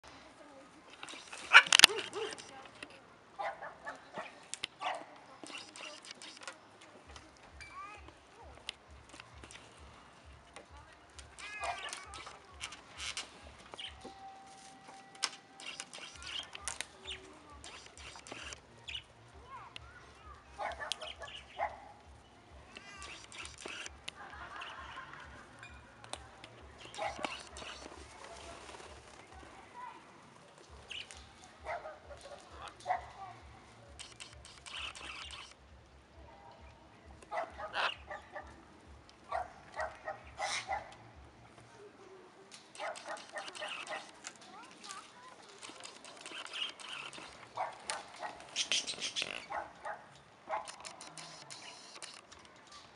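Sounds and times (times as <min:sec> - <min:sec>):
parrots chirping: 0:20.6 - 0:21.8, 0:34.0 - 0:35.6, 0:37.7 - 0:38.4, 0:45.9 - 0:47.7, 0:48.4 - 0:49.7
parrots calling harshly: 0:37.6 - 0:38.3, 0:40.1 - 0:40.8, 0:48.3 - 0:49.6.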